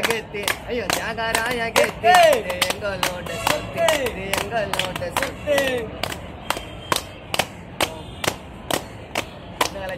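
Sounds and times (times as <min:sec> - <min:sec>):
rhythmic hand claps: 0:00.0 - 0:09.9.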